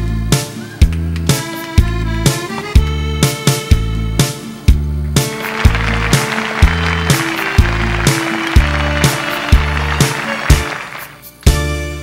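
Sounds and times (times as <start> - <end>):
instrumental pop song with beat: 0.0 - 12.0.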